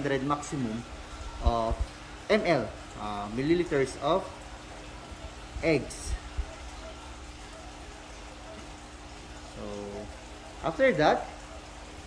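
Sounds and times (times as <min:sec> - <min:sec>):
faint pump hum: 0:00.0 - 0:12.0
running water rushing: 0:00.0 - 0:12.0.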